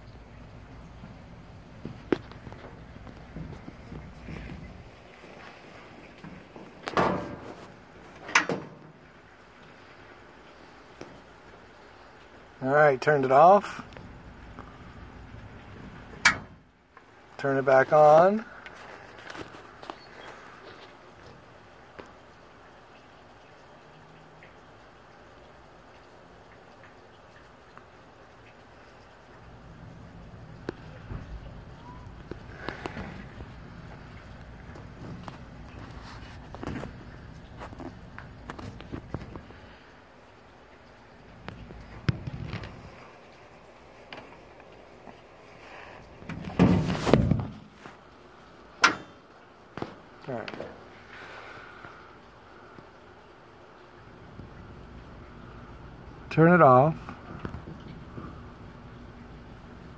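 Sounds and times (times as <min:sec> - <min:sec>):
ice machine hum: 0:00.0 - 0:59.9.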